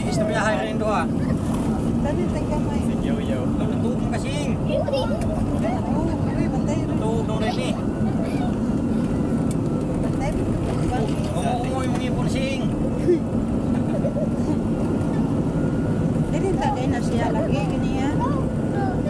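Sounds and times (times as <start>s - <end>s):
vehicle engine and road rumble: 0.0s - 19.0s.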